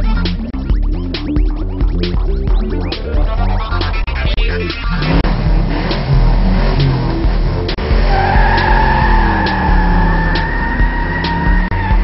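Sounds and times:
car sound effects: 0.0s - 12.0s
intro music with steady beat: 0.0s - 12.0s
high tyre squeal: 4.8s - 12.0s.

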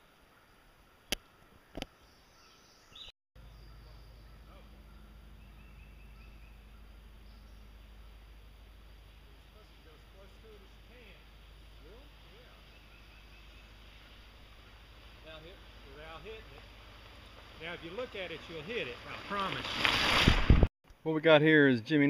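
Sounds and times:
low steady rumble: 3.4s - 19.3s
cyclists' voices: 9.0s - 19.9s.

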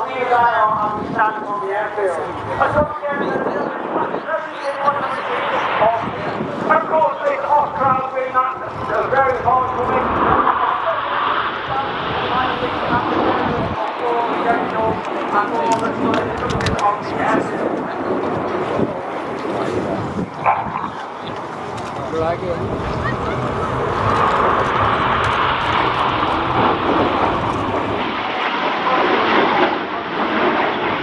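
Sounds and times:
people talking: 0.0s - 24.8s, 28.3s - 29.4s
jet noise rushing: 0.0s - 31.0s
wind on microphone: 0.0s - 31.0s.

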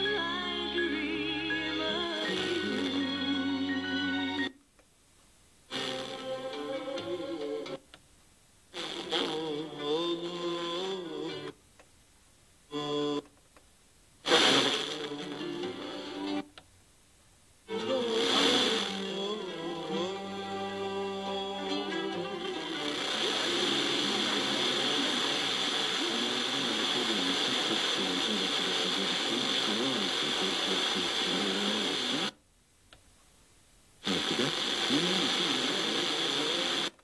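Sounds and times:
radio music through tuner: 0.0s - 4.6s, 5.7s - 7.9s, 8.8s - 11.6s, 14.2s - 16.5s, 17.7s - 32.4s, 34.0s - 37.0s.

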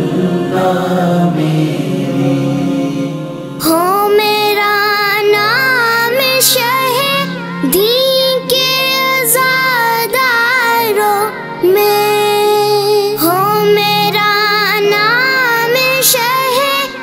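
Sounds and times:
steady low drone: 0.0s - 5.8s
boy singing devotional song: 0.0s - 17.0s.

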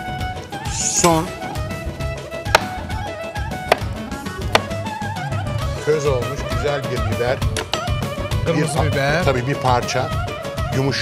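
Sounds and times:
background music: 0.0s - 11.0s
knife striking cutting board: 2.5s - 2.9s, 3.7s - 4.8s.

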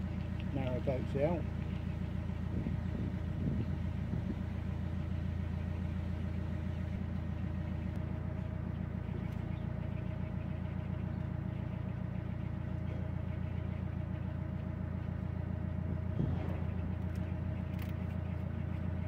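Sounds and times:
diesel engine throbbing: 0.0s - 19.0s.

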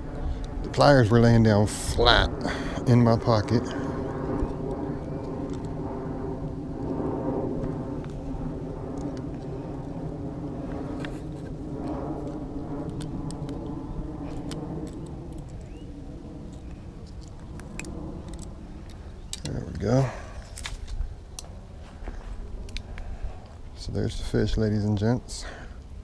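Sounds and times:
engine drone: 0.0s - 23.8s.

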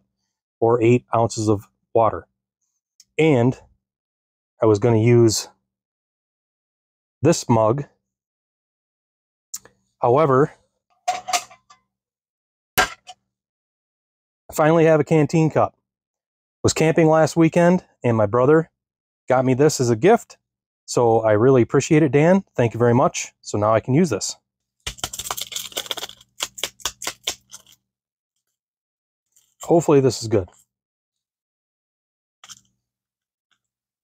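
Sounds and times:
metal cup clinking on steel tray: 11.1s - 11.8s
paper packet crinkling and tearing: 24.9s - 27.8s.

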